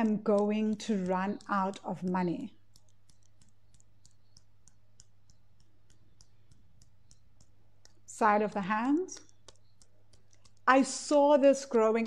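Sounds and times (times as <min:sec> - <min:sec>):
wrists tapping together: 0:00.0 - 0:12.0.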